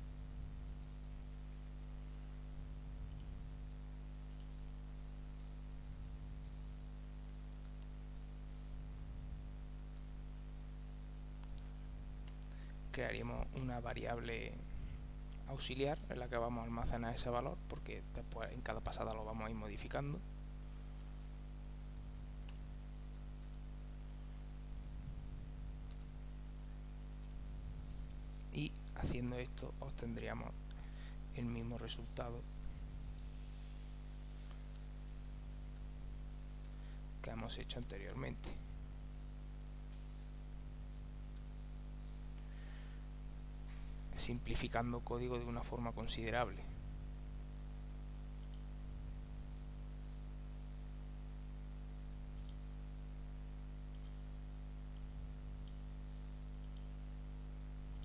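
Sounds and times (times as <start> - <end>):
low electrical hum: 0.0 - 58.0
computer keyboard keystrokes: 21.8 - 22.7, 24.8 - 26.1
faint click: 48.4 - 48.7, 53.9 - 54.2, 56.6 - 56.9.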